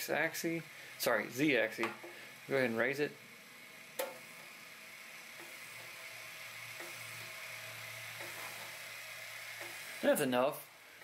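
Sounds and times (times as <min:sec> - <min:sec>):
stepper motor hum: 0:00.0 - 0:10.9.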